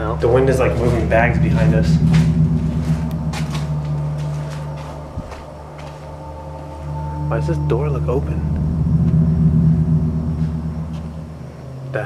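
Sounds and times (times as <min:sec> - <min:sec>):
low mechanical drone: 0:00.0 - 0:12.0.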